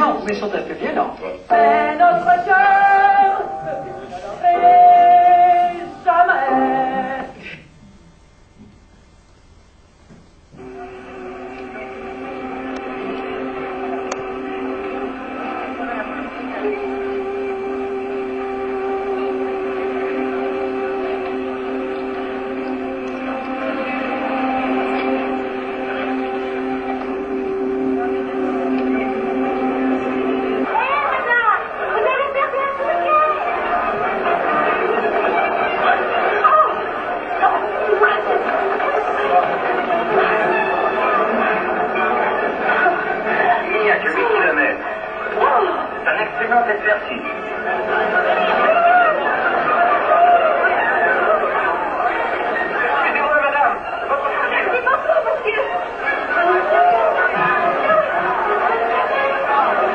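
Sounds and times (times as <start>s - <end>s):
muffled indistinct chatter: 0.0s - 8.8s, 10.5s - 59.9s
held droning tone: 1.6s - 8.7s, 10.5s - 59.9s.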